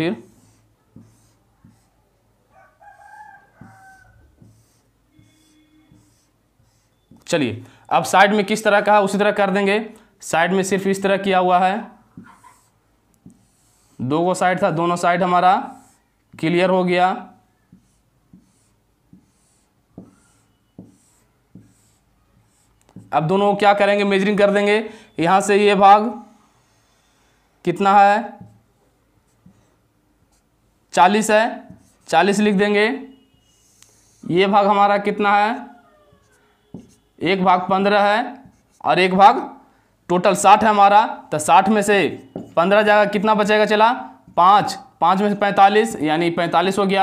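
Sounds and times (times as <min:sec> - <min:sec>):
pen scratching on paper: 0:00.2 - 0:02.0, 0:03.3 - 0:07.3, 0:12.2 - 0:16.1, 0:17.7 - 0:23.2, 0:31.7 - 0:32.4, 0:33.5 - 0:34.6, 0:36.3 - 0:37.1, 0:38.4 - 0:39.0
rooster crowing: 0:02.5 - 0:04.4.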